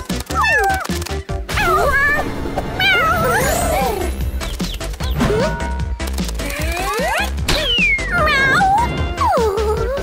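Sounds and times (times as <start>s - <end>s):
cartoon kitten meow-like calls: 8.0s - 8.9s.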